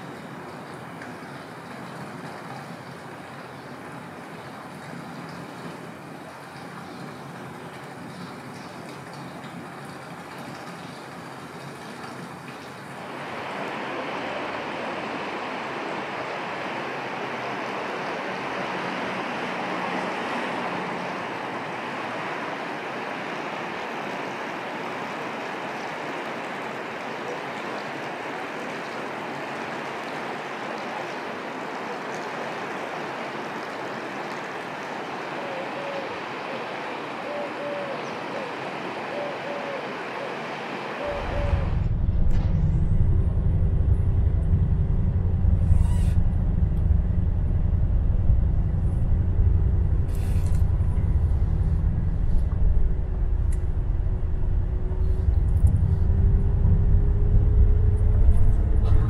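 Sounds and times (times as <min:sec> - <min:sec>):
sea waves on a beach: 0:00.0 - 0:41.8.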